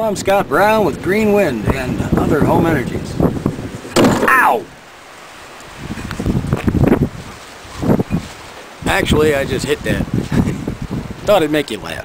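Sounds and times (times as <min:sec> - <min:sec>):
man laughing breathily: 0:10.2 - 0:10.7.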